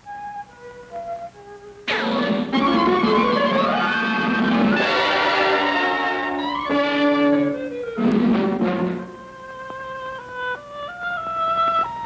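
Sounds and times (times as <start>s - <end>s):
orchestral cartoon score: 1.9s - 11.1s.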